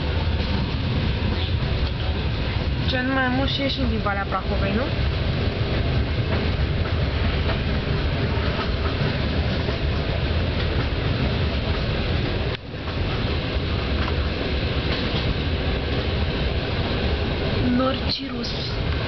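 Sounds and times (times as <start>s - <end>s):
train wheels rumbling on rails: 0.0s - 19.0s
faint rail clicks: 13.9s - 14.2s.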